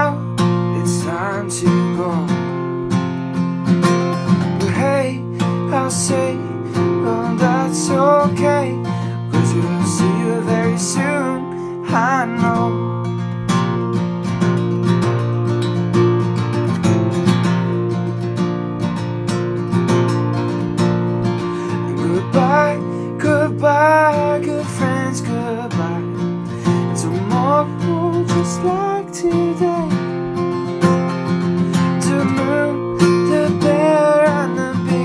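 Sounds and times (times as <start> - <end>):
man singing: 0.0 - 2.7, 4.4 - 13.3, 21.4 - 30.5, 31.7 - 35.0
acoustic guitar strumming: 0.0 - 35.0.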